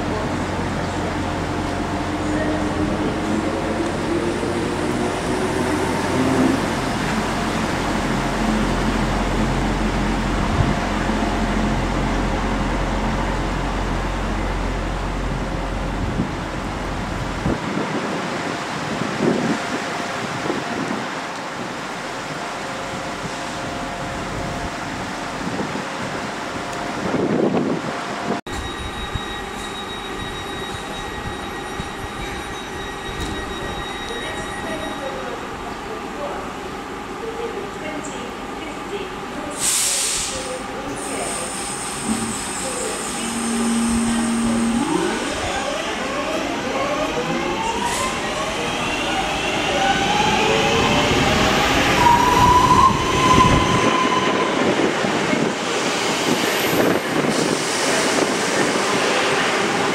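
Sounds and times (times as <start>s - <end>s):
electric train rumbling: 0.0s - 59.9s.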